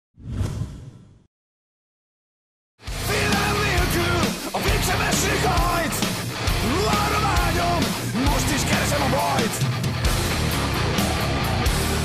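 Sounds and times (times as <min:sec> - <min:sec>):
whoosh: 0:00.2 - 0:01.3.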